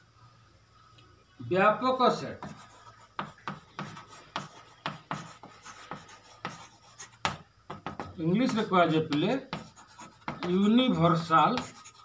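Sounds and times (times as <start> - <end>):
chalk strokes on blackboard: 2.2 - 12.0
faint chalk scraping: 2.2 - 12.0.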